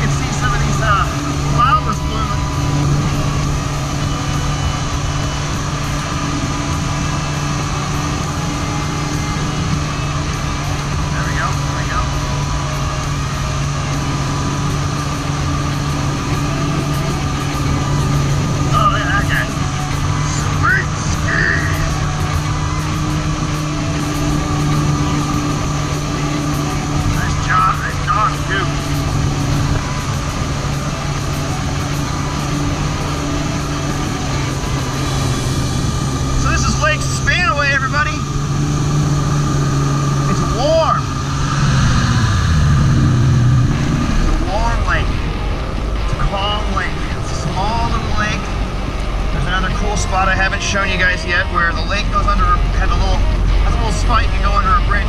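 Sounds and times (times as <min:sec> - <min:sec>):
jet ski engine running: 0:00.0 - 0:55.0
water rushing and spraying: 0:00.0 - 0:55.0.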